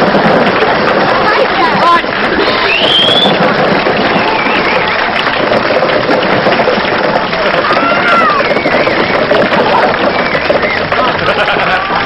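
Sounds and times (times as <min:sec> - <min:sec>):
audience laughing and clamouring: 0:00.0 - 0:12.0
balls clattering onto floor: 0:00.0 - 0:12.0.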